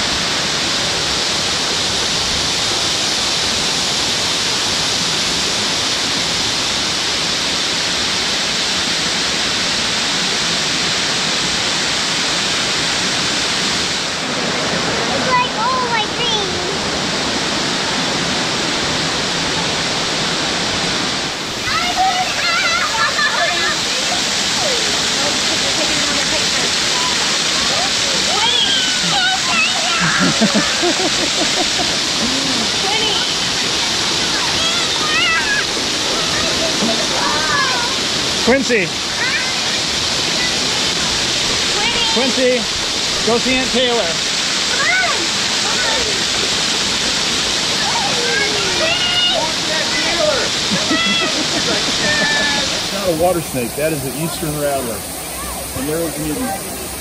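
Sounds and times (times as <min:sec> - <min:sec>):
waterfall rushing over rocks: 0:00.0 - 0:57.0.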